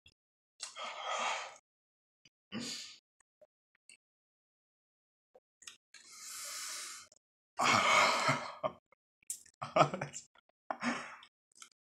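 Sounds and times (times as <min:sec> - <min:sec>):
man hissing breath through teeth: 0:06.1 - 0:07.1.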